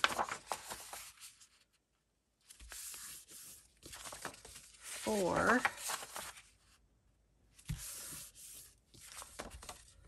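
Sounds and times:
paper sheets rustling: 0.0s - 1.8s, 2.4s - 6.8s, 7.6s - 10.0s.

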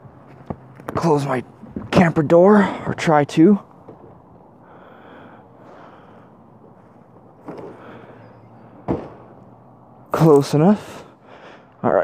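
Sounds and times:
bump: 7.3s - 9.4s.

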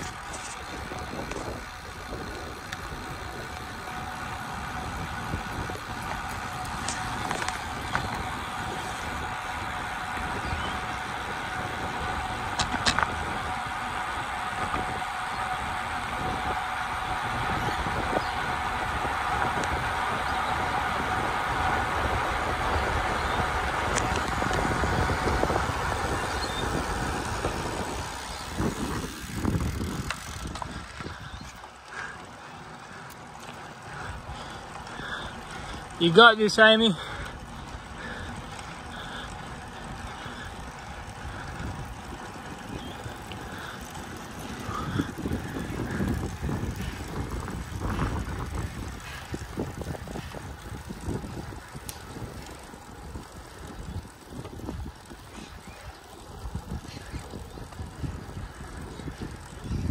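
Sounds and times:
wind on microphone: 0.0s - 31.6s, 40.1s - 59.9s
bike tyres on asphalt: 0.0s - 59.9s.

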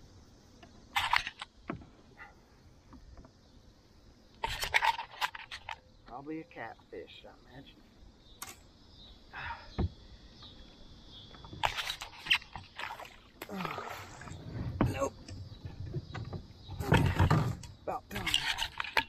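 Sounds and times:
water sloshing: 11.4s - 19.0s.

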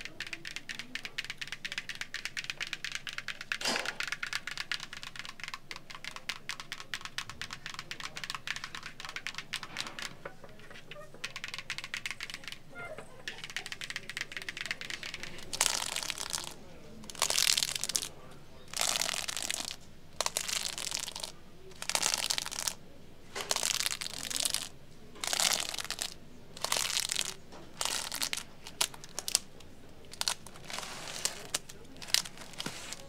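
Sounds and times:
records flipped in plastic sleeves: 0.0s - 18.1s, 18.7s - 33.0s.

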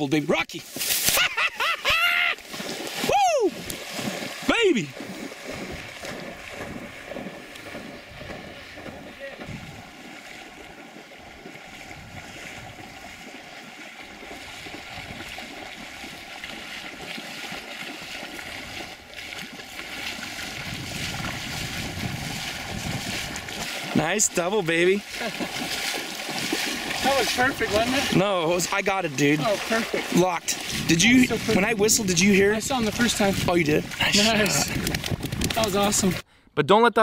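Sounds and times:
dog splashing through water: 2.4s - 36.2s
wind on microphone: 5.0s - 13.4s, 14.1s - 17.1s, 18.2s - 24.0s, 29.6s - 36.2s.

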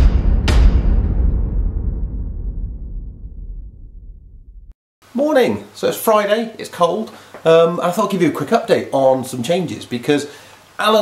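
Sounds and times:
deep boom hits: 0.0s - 4.7s
heavy low rumble: 0.0s - 4.7s.

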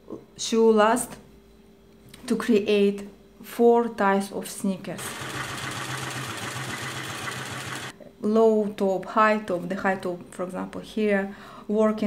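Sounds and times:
sewing machine pulsing hum: 4.9s - 8.0s.

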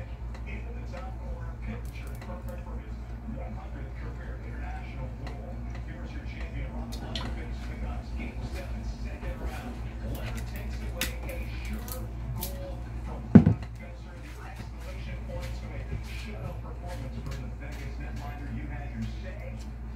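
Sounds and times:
steady low hum: 0.0s - 19.9s
loud thump: 13.4s - 13.6s.

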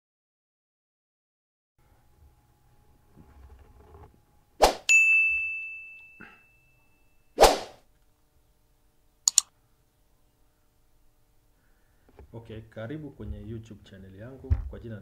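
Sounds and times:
bell-like ding: 4.9s - 7.4s
quick double click: 9.3s - 9.5s.

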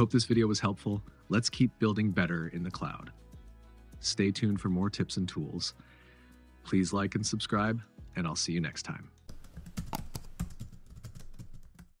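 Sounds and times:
typing on computer keyboard: 9.3s - 12.0s.

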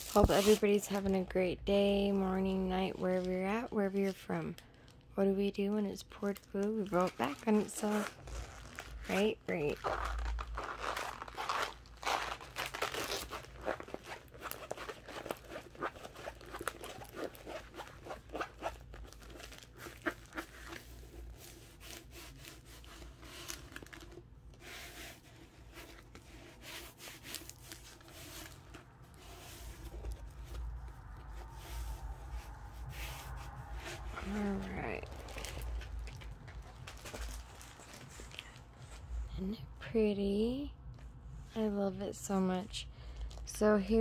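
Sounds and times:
paper and plastic crinkling: 0.0s - 1.3s, 2.2s - 39.2s.

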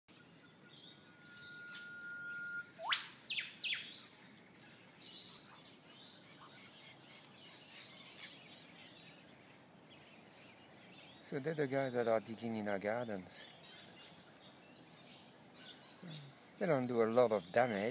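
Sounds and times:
faint bird chirps: 0.1s - 17.9s
bird whistle and whip-crack call: 1.2s - 3.9s.

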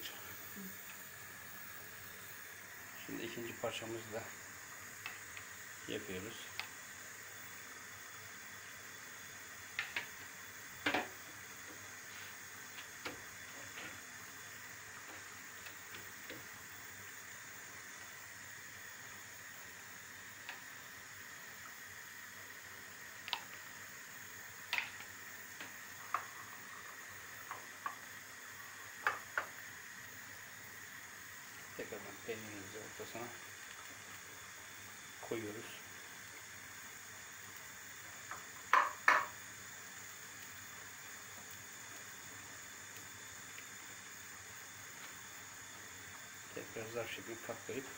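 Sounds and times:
faint hiss: 0.0s - 47.9s.

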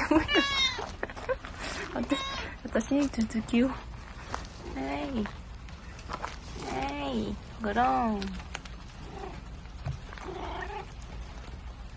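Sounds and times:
cat making rough calls: 10.2s - 11.0s.

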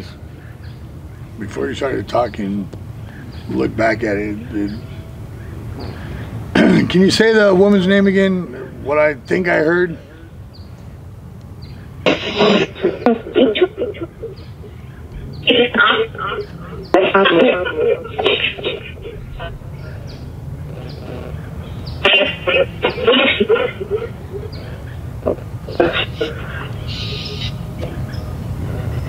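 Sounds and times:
steady low hum: 0.0s - 29.0s
choppy voice-like fragments: 12.1s - 20.2s, 22.0s - 28.0s.

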